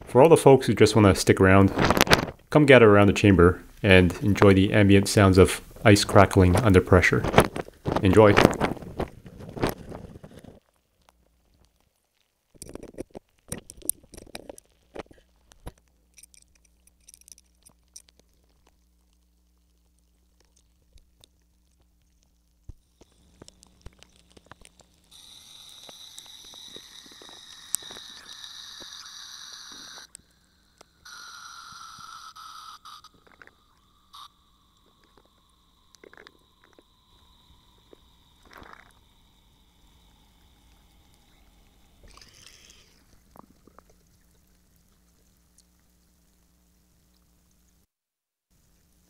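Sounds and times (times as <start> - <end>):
ice cubes crackling and popping: 1.8 - 2.4, 6.2 - 45.7
hiss with falling whine: 22.8 - 43.5.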